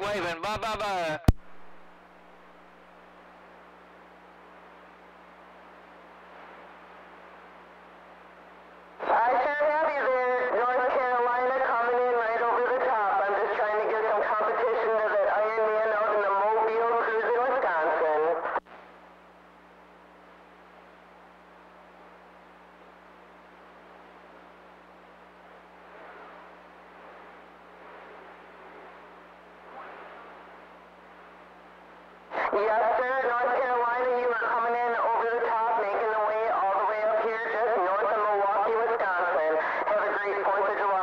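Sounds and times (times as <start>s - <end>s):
garbled radio voice: 0.0s - 1.3s, 9.0s - 18.6s, 32.3s - 41.0s
faint hum: 0.0s - 41.0s
radio static hiss: 0.0s - 41.0s.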